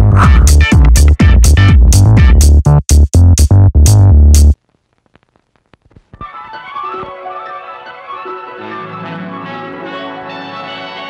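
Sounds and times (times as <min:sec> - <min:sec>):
sitcom theme music: 0:00.0 - 0:02.6, 0:06.2 - 0:11.0.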